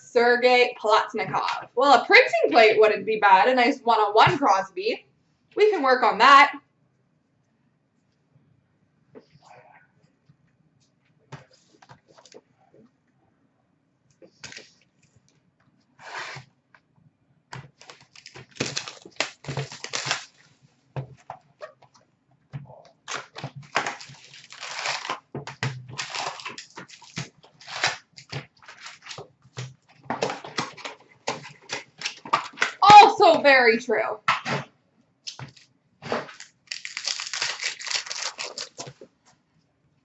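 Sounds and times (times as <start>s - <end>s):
foil packs crinkling: 17.6s - 20.5s, 23.1s - 25.3s, 25.9s - 29.3s, 35.3s - 39.1s.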